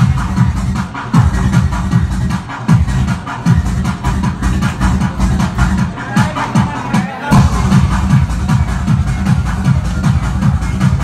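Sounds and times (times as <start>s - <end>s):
electronic dance music: 0.0s - 11.0s
heavy kick drum: 0.0s - 11.0s.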